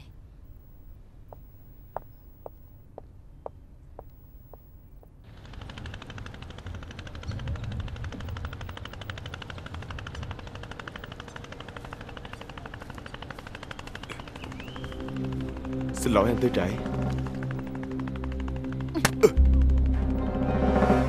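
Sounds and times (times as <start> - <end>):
boat engine chugging: 5.3 - 21.0.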